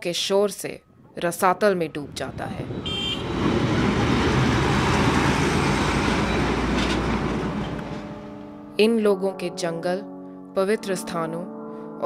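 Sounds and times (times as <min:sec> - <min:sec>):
road noise: 0:01.4 - 0:08.7
heavy truck engines rumbling: 0:01.8 - 0:08.6.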